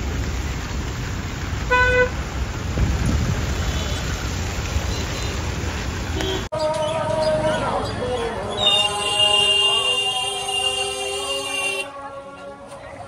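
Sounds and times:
traffic on wet road: 0.0s - 13.0s
vehicle horn toot: 1.7s - 2.2s, 6.2s - 6.5s, 8.6s - 11.9s.

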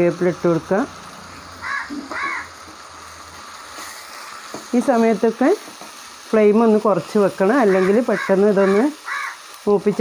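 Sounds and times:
food sizzling in a pan: 0.0s - 10.0s
caw-like bird calls: 1.6s - 2.6s, 7.6s - 9.5s.

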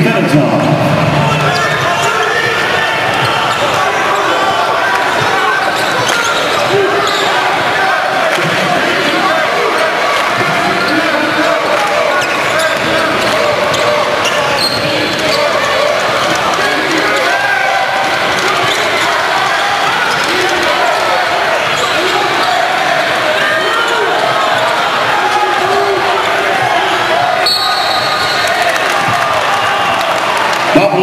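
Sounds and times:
crowd voices echoing: 0.0s - 31.0s.

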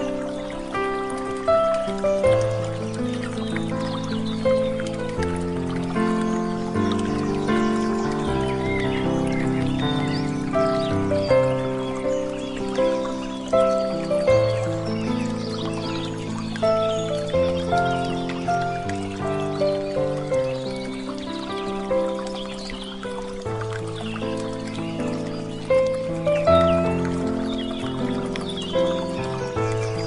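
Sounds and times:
faint birdsong chirps: 0.0s - 30.0s.

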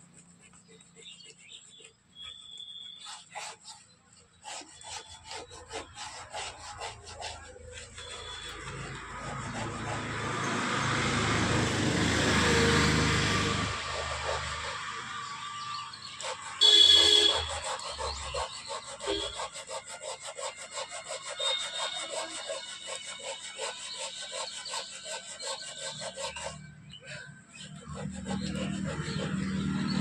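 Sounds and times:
sandpaper rubbing on wood: 0.0s - 30.0s.

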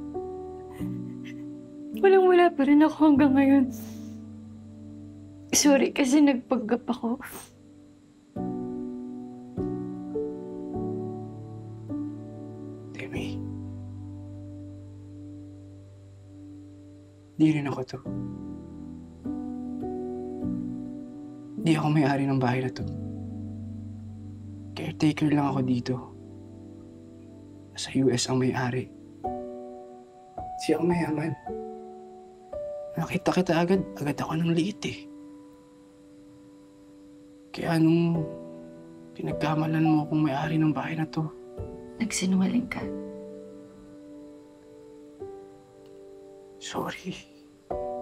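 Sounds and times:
soft music with sustained low notes: 0.0s - 48.0s.

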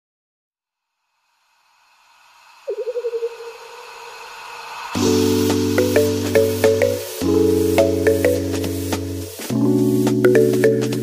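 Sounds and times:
synthesized hissing swell: 1.1s - 10.1s
synthesized pulsing tone: 2.7s - 3.8s.

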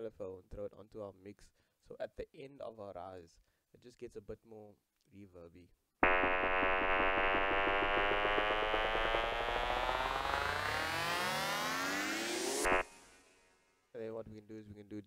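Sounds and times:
synth riser sweeping upward: 6.0s - 13.4s.

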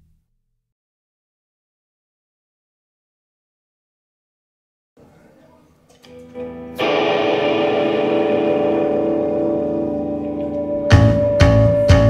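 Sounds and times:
rock band chord ringing: 6.0s - 12.0s.

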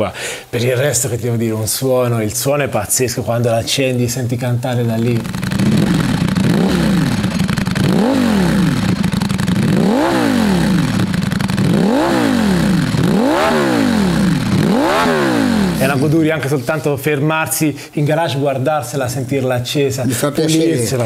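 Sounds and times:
motorcycle engine idling: 5.0s - 16.0s
sharp throttle blips: 5.2s - 16.0s.

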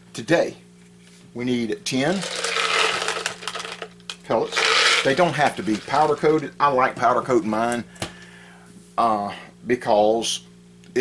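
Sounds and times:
pellets rattling in a jar: 2.0s - 6.5s.

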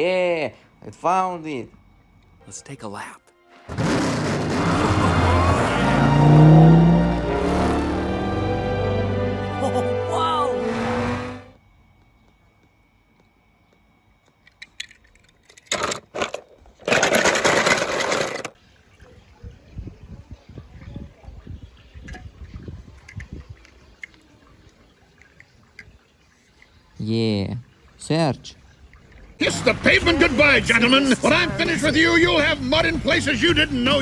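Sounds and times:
loud rushing noise: 3.7s - 9.3s, 10.5s - 11.5s
toy cars clicking and knocking: 14.4s - 18.6s.

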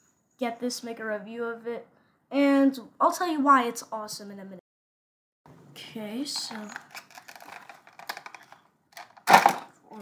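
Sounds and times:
toy packaging clicks and crackles: 6.3s - 10.0s.

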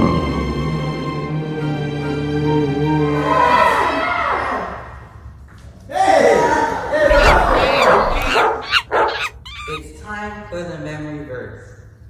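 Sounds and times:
dog whining: 7.1s - 9.9s
dog yelping: 7.1s - 9.9s.

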